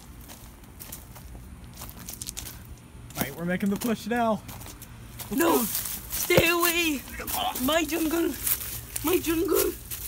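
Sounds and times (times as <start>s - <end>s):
footsteps crunching on gravel: 0.0s - 10.0s
plants rustling: 3.7s - 10.0s.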